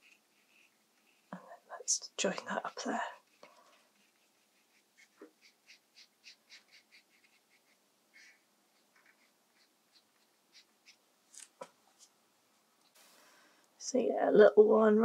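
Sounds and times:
paintbrush scratching on paper: 0:00.0 - 0:12.1.

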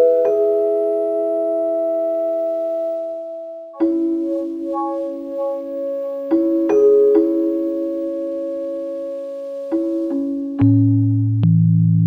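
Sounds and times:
held electric piano chord: 0:00.0 - 0:10.9.

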